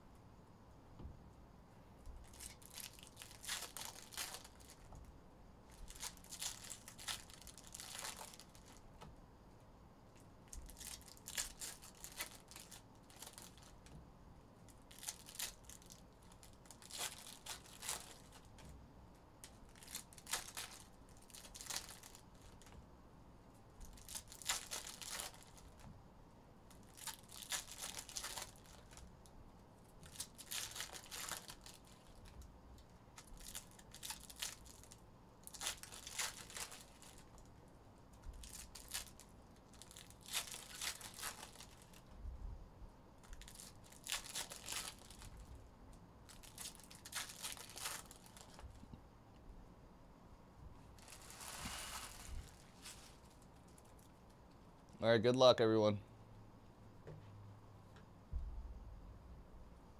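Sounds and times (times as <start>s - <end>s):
foil wrappers tearing and crinkling: 2.2s - 4.9s, 5.7s - 8.8s, 10.5s - 14.0s, 14.7s - 18.7s, 19.4s - 22.7s, 23.8s - 25.9s, 26.7s - 29.1s, 30.0s - 32.4s, 33.1s - 37.5s, 38.3s - 42.0s, 43.2s - 45.5s, 46.3s - 48.7s, 51.0s - 54.1s.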